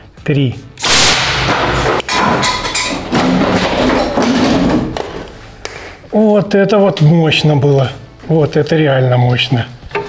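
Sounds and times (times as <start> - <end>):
air cannon blast: 0.8 - 2.0.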